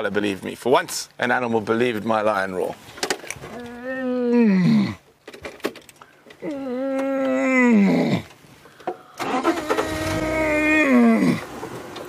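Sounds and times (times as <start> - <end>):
man imitating lion roar: 3.5 - 5.0, 6.4 - 8.3, 9.6 - 11.5.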